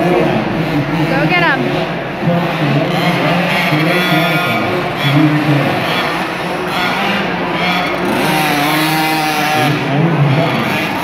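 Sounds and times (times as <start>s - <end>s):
motocross bike engines revving: 0.0s - 11.0s.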